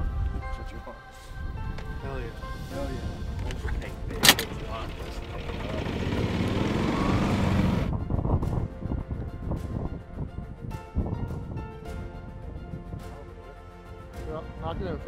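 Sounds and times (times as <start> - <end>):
background music: 0.0 - 15.0
golf cart driving: 3.3 - 7.9.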